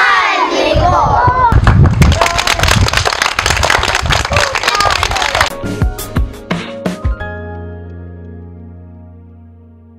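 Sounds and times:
children clapping: 1.6 - 5.6.

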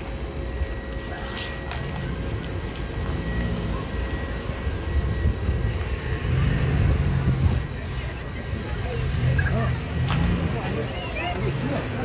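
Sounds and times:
low engine and tyre rumble: 0.0 - 12.0
vehicles rolling past: 0.0 - 12.0.

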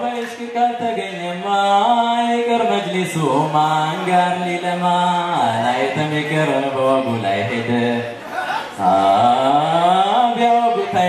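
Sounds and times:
men chanting devotional song: 0.0 - 11.0.

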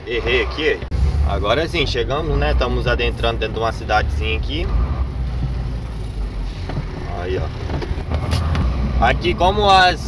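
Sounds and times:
road noise: 0.0 - 10.0
truck engine rumble: 0.0 - 10.0.

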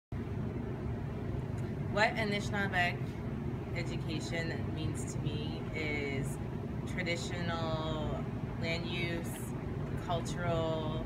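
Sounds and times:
low outdoor rumble: 0.1 - 11.0
woman speaking: 1.9 - 3.2, 3.8 - 11.0.

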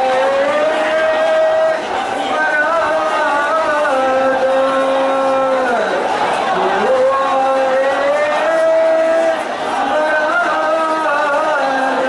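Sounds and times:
person chanting a lament: 0.0 - 12.0.

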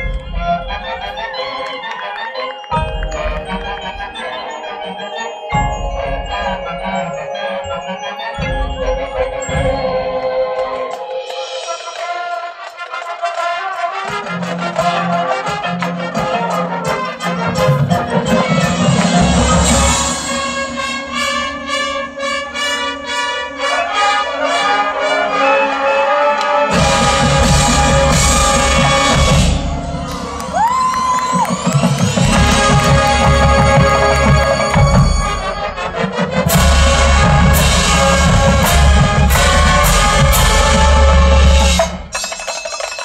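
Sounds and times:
marching band playing: 0.0 - 43.0
bass drums: 8.4 - 10.3, 26.7 - 35.7, 36.4 - 42.2.

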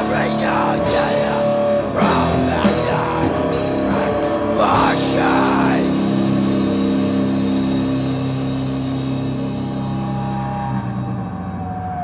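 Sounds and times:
rock guitar chord ringing out: 0.0 - 11.8.

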